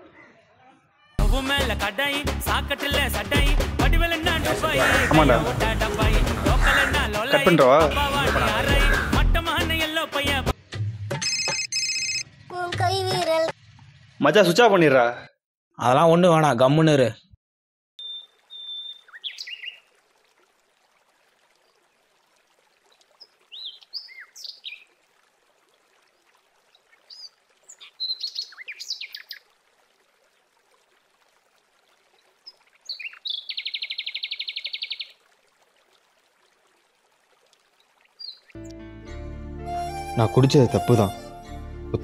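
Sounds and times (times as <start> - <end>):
birds chirping: 4.2 - 9.2, 18.0 - 19.9, 23.2 - 24.9, 26.7 - 29.5, 32.4 - 35.2, 38.1 - 38.7.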